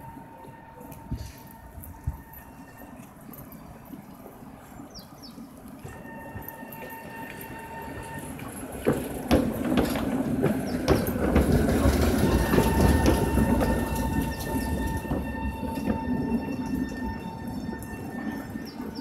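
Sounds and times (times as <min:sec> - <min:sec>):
tram rolling rumble: 0:00.0 - 0:19.0
wheels clacking over points: 0:06.7 - 0:19.0.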